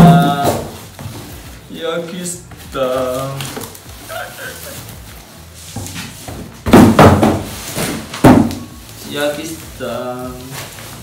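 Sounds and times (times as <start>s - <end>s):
packaging rustling and scraping: 0.0s - 6.7s, 7.3s - 11.0s.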